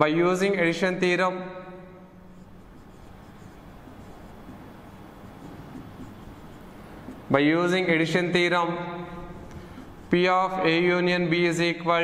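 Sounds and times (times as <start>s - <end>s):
marker writing on whiteboard: 2.1s - 11.4s.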